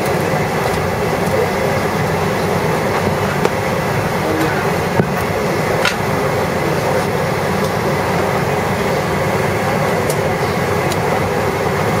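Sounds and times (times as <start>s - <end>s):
cabin air conditioning hum: 0.0s - 12.0s.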